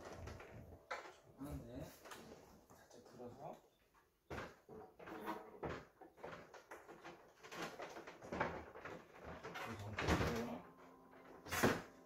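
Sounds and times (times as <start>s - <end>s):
plastic panel knocking and scraping: 4.3s - 10.5s.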